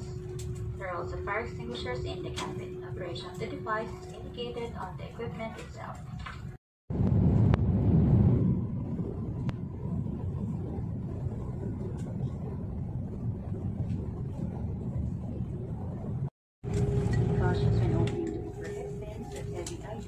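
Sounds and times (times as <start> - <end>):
jet airliner cabin rumble: 0.0 - 20.0.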